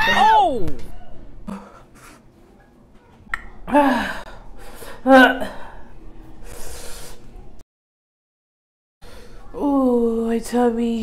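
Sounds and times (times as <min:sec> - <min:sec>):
woman moaning: 0:03.7 - 0:04.4.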